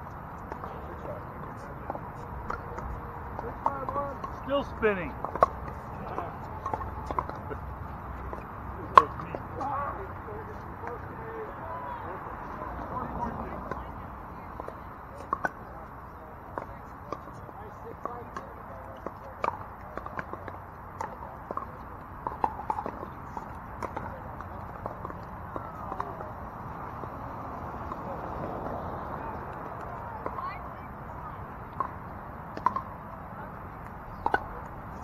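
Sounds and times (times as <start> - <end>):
paddles striking plastic balls: 0.0 - 11.1, 16.5 - 27.2, 29.4 - 35.0
murmur of distant voices: 0.0 - 35.0.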